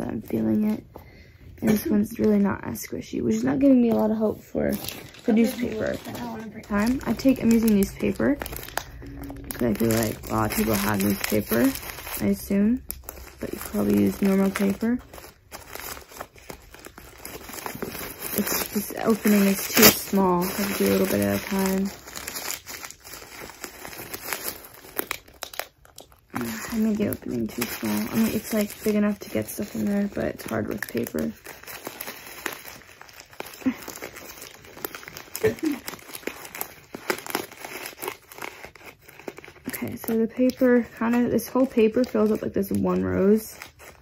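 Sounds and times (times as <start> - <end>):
newspaper crumpling: 1.6 - 44.0.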